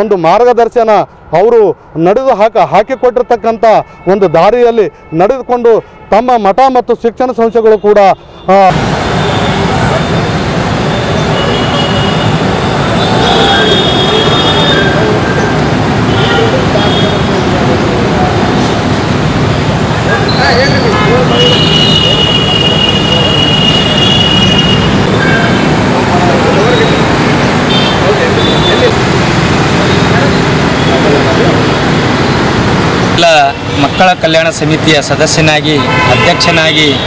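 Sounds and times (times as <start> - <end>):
road traffic: 0.0 - 37.0
vehicle horns: 2.7 - 6.6, 7.5 - 17.6, 20.2 - 31.7, 35.6 - 37.0
people talking: 20.0 - 27.2, 28.0 - 29.0, 29.6 - 31.7, 33.2 - 37.0.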